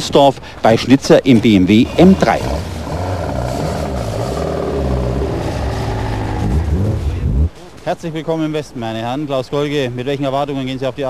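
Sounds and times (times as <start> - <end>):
racing car engines revving: 1.6 - 7.6.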